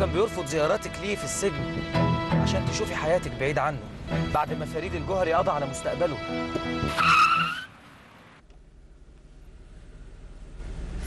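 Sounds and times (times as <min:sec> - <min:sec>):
car tyres squealing: 0:06.4 - 0:08.4.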